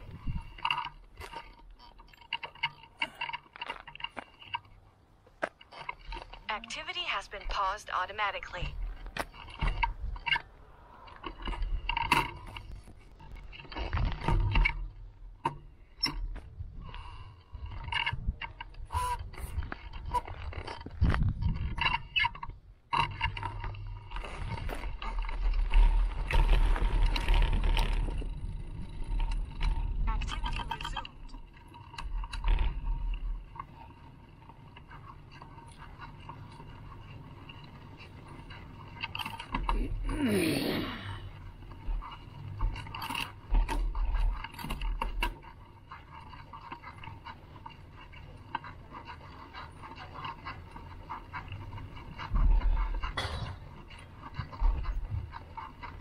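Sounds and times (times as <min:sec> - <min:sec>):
wind buffeting microphone: 0:00.0 - 0:00.7, 0:16.3 - 0:22.8
bike clicks and rattles: 0:00.0 - 0:56.0.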